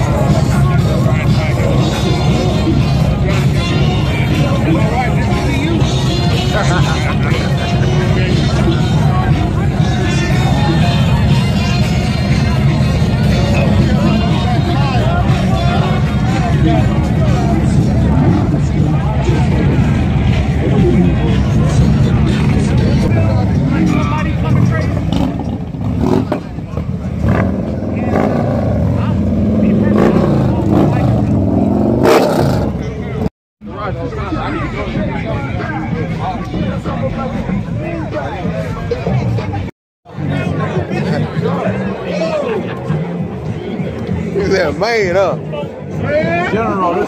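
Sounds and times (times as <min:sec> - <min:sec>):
music: 0:00.0 - 0:24.4, 0:33.8 - 0:47.0
crowd voices: 0:00.0 - 0:47.0
motorcycle engines rumbling: 0:00.0 - 0:47.0.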